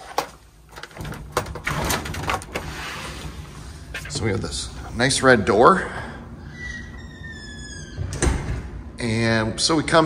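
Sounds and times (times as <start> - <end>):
door squeaking: 6.4 - 8.8.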